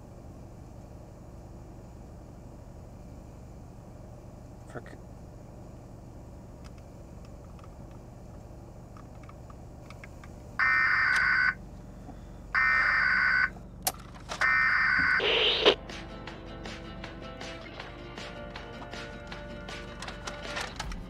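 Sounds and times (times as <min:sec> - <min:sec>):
loud alarm beeps: 0:12.6 - 0:13.5, 0:14.5 - 0:15.8.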